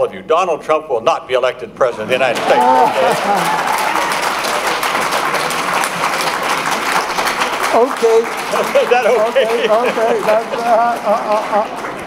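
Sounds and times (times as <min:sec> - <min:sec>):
audience applauding: 0:02.2 - 0:12.0.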